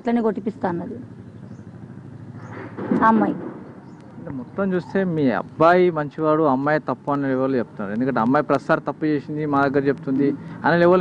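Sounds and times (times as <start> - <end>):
woman speaking: 0.0 - 1.0, 2.9 - 3.5
distant road traffic hum: 0.0 - 11.0.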